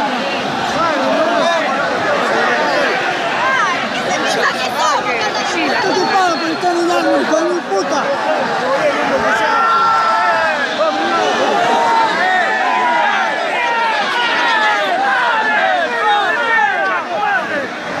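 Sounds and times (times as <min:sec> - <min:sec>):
crowd shouting and yelling: 0:00.0 - 0:18.0.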